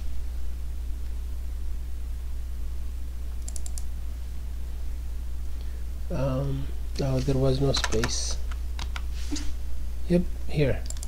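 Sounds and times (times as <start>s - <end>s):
steady low hum: 0.0s - 11.0s
computer keyboard keystrokes: 3.4s - 3.9s, 7.7s - 9.1s.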